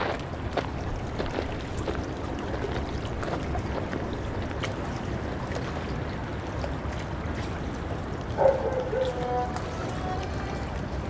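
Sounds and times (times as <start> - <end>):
small splashes: 0.0 - 11.0
water lapping and trickling: 0.0 - 11.0.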